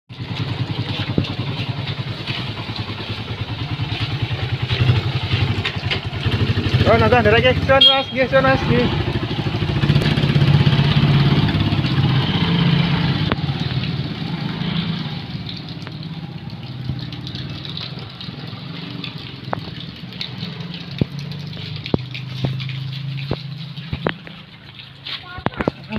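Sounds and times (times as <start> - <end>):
motorcycle engines running: 0.1 - 25.9.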